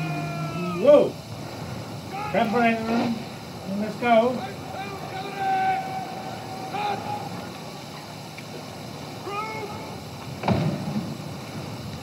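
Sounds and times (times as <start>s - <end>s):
voices calling out: 0.0s - 10.3s.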